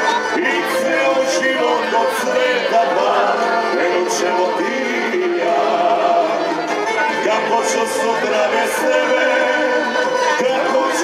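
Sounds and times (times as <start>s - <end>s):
man and woman singing: 0.0s - 11.0s.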